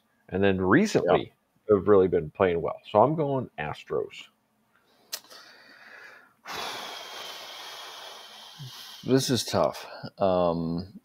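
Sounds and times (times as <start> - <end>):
man breathing heavily: 5.2 - 9.1.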